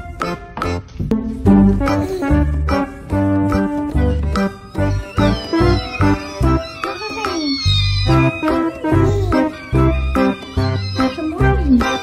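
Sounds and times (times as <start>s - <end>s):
music with steady beat: 0.0s - 12.0s
kittens mewing: 4.8s - 11.7s.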